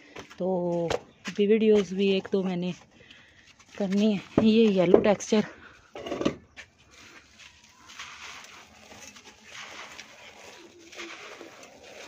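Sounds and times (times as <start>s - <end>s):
sand-cement ball crunching: 6.8s - 12.0s
grains spilling: 6.9s - 12.0s.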